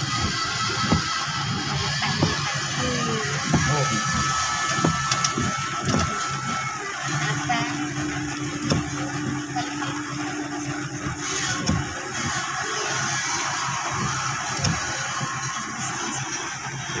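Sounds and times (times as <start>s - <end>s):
vehicle engine hum: 0.0s - 17.0s.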